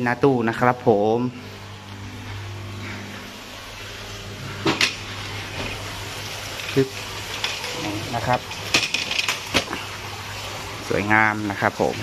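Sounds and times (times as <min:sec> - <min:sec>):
air pump humming: 0:00.0 - 0:12.0.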